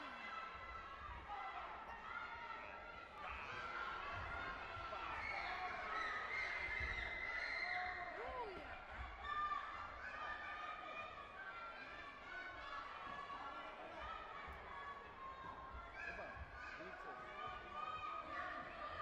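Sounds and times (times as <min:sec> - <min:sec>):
many voices talking and calling: 0:00.0 - 0:19.0.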